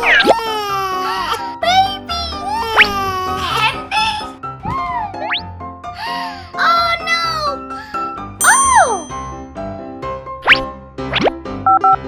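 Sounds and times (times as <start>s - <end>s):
children's background music: 0.0s - 11.9s
short two-tone dialing beeps: 11.7s - 12.0s.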